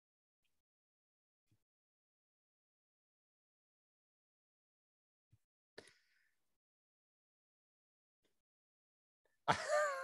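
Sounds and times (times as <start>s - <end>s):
man laughing: 9.5s - 10.0s.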